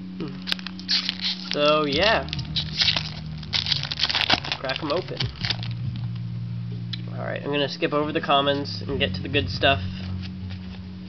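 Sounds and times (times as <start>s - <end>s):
low background music: 0.0s - 11.0s
foil wrapper crinkling: 0.3s - 5.8s.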